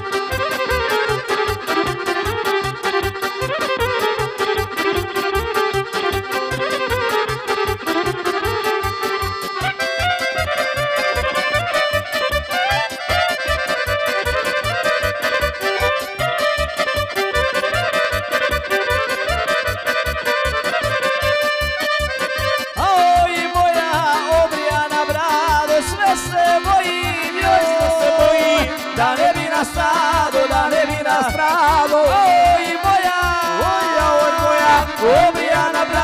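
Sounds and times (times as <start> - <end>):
accordion-like keyboard: 0.0 - 36.0
electric violin melody: 0.0 - 36.0
steady bass beat: 7.7 - 36.0.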